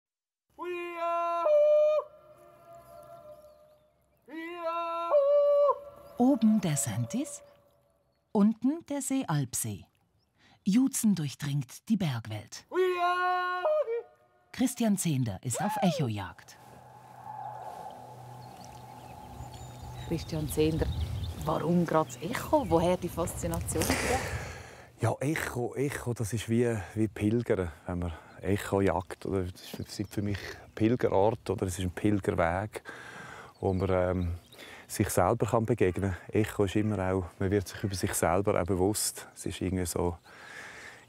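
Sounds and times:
man yodeling: 0:00.6 - 0:03.4, 0:04.3 - 0:06.2, 0:12.7 - 0:14.1
yodel echoing off mountains: 0:00.6 - 0:08.1, 0:12.7 - 0:14.5, 0:15.5 - 0:23.2
low and high held drone: 0:16.7 - 0:20.2.

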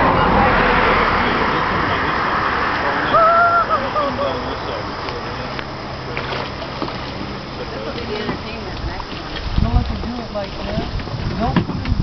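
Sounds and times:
faint voices: 0:00.0 - 0:12.0
paddle splashing in water: 0:00.0 - 0:12.0.

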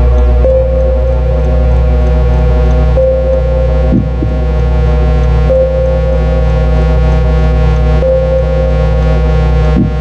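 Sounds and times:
deep steady bass: 0:00.0 - 0:10.0
higher synth note: 0:00.0 - 0:10.0
synth drone: 0:00.0 - 0:10.0.

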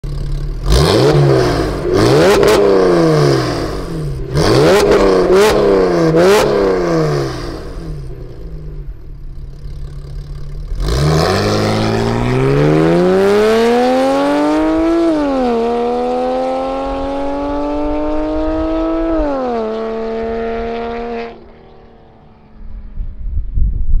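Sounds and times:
car engine revving: 0:00.0 - 0:22.8
car accelerating through gears: 0:00.6 - 0:08.1, 0:10.8 - 0:22.2.

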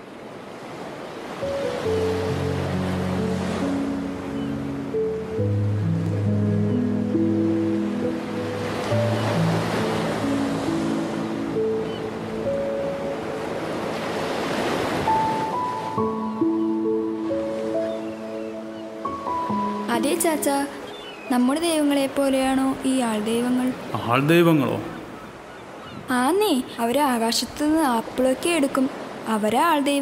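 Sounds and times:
ocean surf washing ashore: 0:00.0 - 0:30.0
soft music with held notes: 0:01.4 - 0:22.6.

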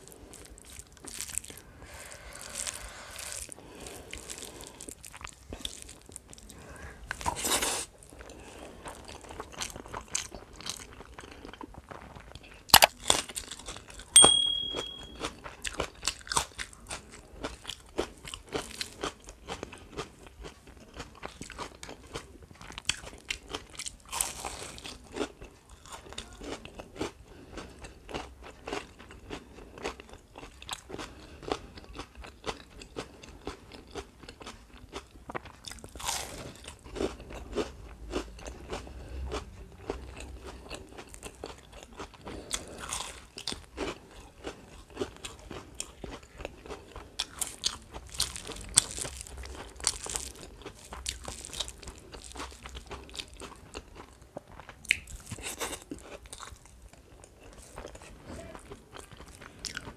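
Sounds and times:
person crunching fried food: 0:00.0 - 0:14.2, 0:15.2 - 0:59.9.

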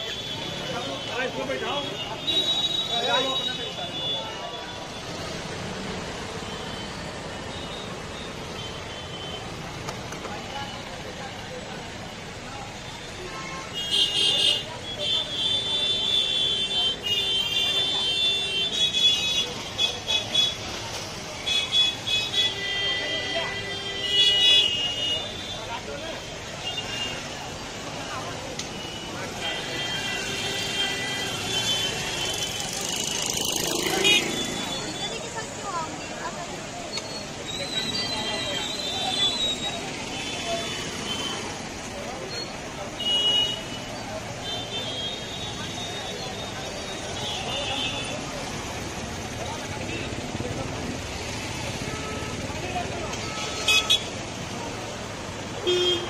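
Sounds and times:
indistinct crowd voices: 0:00.0 - 0:56.0
traffic: 0:00.0 - 0:56.0.

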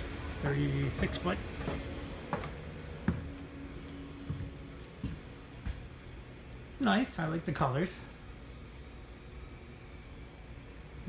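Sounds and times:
footsteps thudding on floor: 0:01.6 - 0:03.3.

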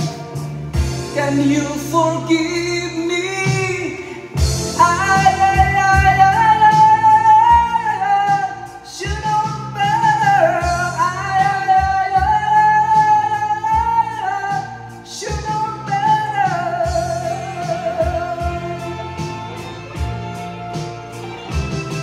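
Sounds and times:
backing track with bass and drums: 0:00.0 - 0:22.0
man singing with vibrato: 0:01.0 - 0:20.1.

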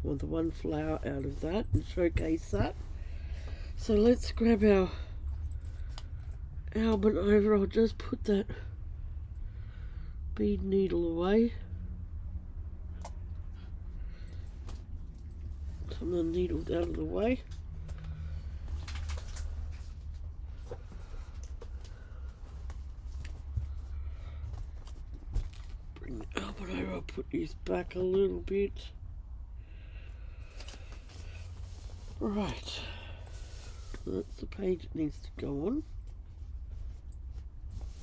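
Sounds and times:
steady low hum: 0:00.0 - 0:38.0
fabric and paper rustling: 0:15.8 - 0:26.5, 0:30.4 - 0:32.6.

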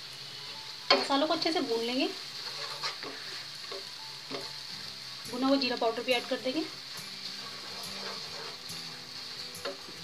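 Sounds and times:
onion and spices sizzling in oil: 0:00.0 - 0:10.0
wooden spatula scraping pan: 0:02.1 - 0:04.5, 0:06.2 - 0:10.0.

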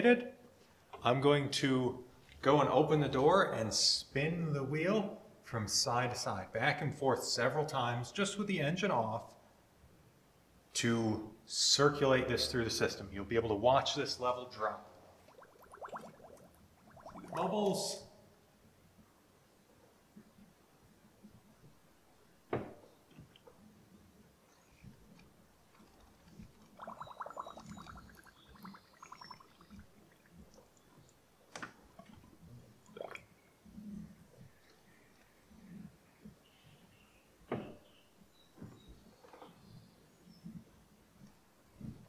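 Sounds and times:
fluid gurgling and bubbling: 0:15.0 - 0:17.5, 0:25.7 - 0:33.5.

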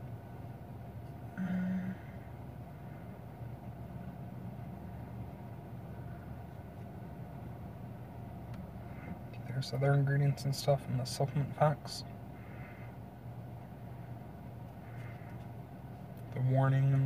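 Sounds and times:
car idling with air conditioner: 0:00.0 - 0:17.0.

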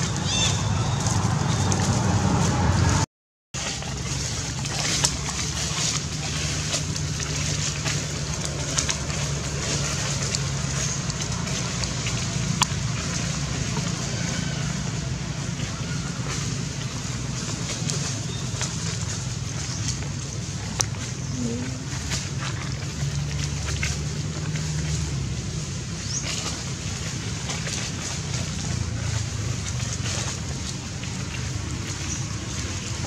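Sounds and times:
outdoor background hum: 0:00.0 - 0:03.0, 0:03.6 - 0:33.0.

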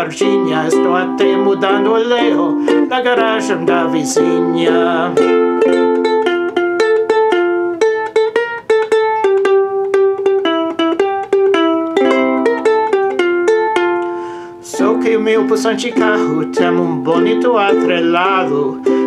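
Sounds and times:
person singing: 0:00.0 - 0:08.1, 0:10.2 - 0:19.0
ukulele strumming: 0:00.0 - 0:19.0.

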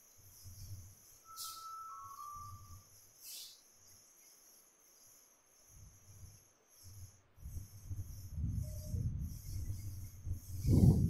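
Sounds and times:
faint steady tone: 0:00.0 - 0:11.0
steady high hiss: 0:00.0 - 0:11.0.

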